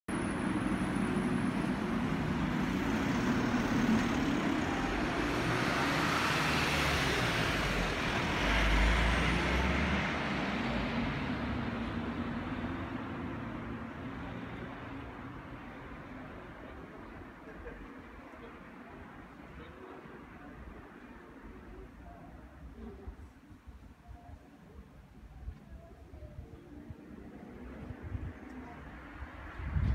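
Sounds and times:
vehicle passing: 0:00.3 - 0:15.5.

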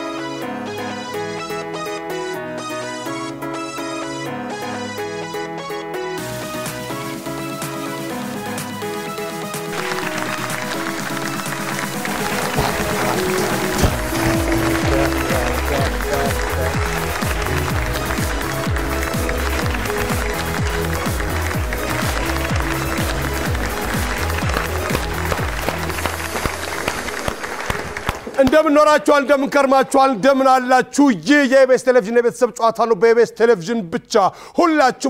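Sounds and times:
upbeat game-show music: 0:00.0 - 0:33.3
people clapping: 0:09.6 - 0:29.6.

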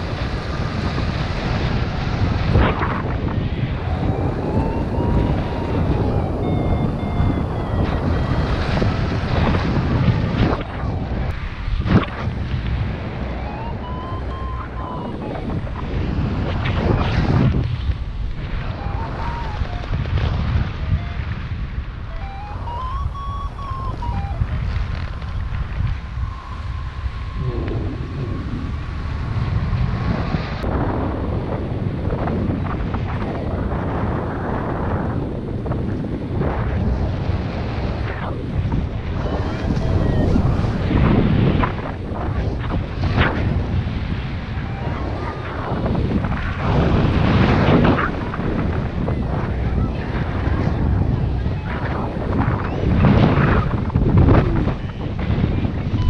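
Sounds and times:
wind rushing over microphone: 0:00.0 - 0:56.0
variometer beeping: 0:03.8 - 0:09.3, 0:13.2 - 0:15.8, 0:18.7 - 0:20.0, 0:22.1 - 0:24.6, 0:26.0 - 0:27.6, 0:39.2 - 0:40.8.

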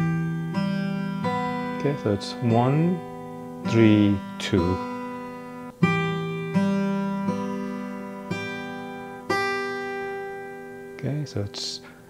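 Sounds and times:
acoustic guitar fingerpicking: 0:00.0 - 0:12.0.

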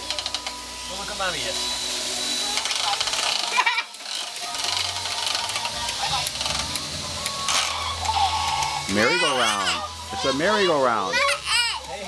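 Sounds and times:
little tune: 0:00.0 - 0:11.9
toy motor hum: 0:00.0 - 0:12.0
children's voices: 0:07.5 - 0:11.9.

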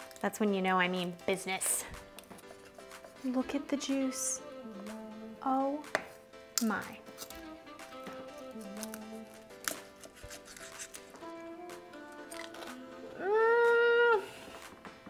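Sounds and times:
background music: 0:00.0 - 0:15.0
knife crunching through crackling skin: 0:07.1 - 0:07.4, 0:08.3 - 0:11.2, 0:12.2 - 0:12.8.

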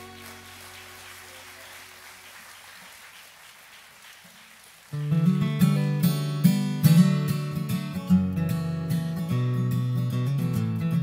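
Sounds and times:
acoustic guitar chord ringing: 0:05.0 - 0:11.0.

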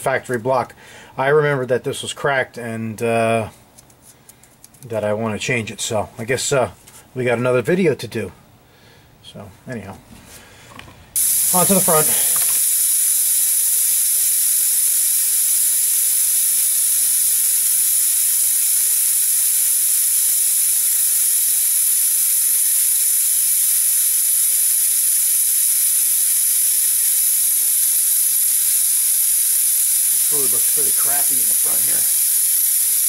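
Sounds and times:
vacuum brake bleeder hissing: 0:11.2 - 0:33.0.

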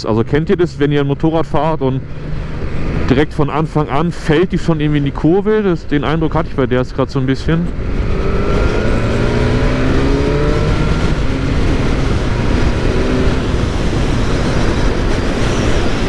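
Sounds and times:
motorcycle engine accelerating hard: 0:07.6 - 0:16.0
wind noise on microphone: 0:07.7 - 0:16.0.

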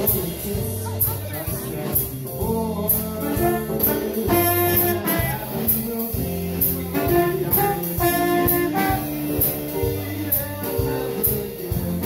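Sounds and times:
jazz band playing: 0:00.0 - 0:12.0.

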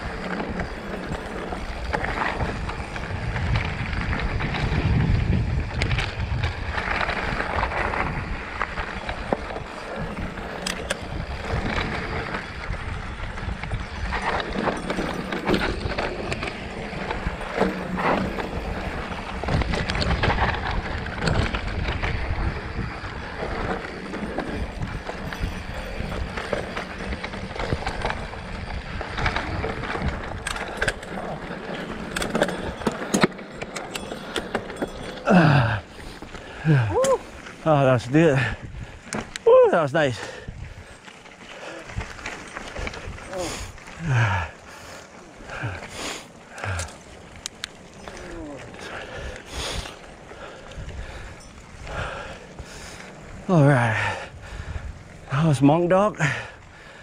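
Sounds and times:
bike rattling over bumps: 0:00.0 - 0:57.0
tyres rumbling on dirt: 0:00.0 - 0:57.0.

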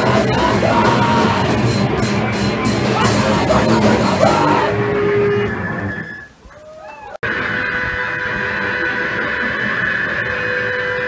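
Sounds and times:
electric guitar feedback: 0:00.0 - 0:06.4, 0:07.2 - 0:11.0
wavering squeals: 0:00.0 - 0:06.4.

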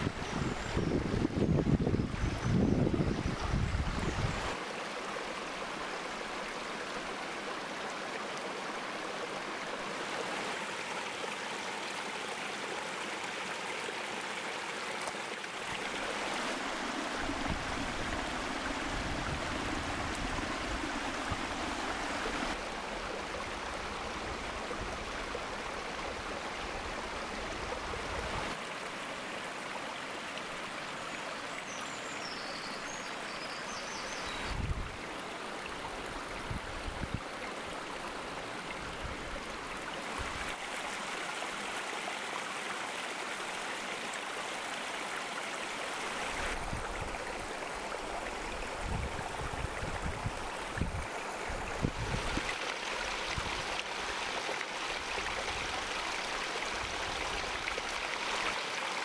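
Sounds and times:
stream flowing over rocks: 0:00.0 - 0:59.0.

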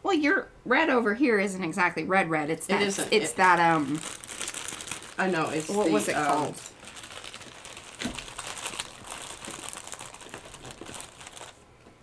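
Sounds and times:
crinkly rustling and crackles: 0:03.3 - 0:12.0.

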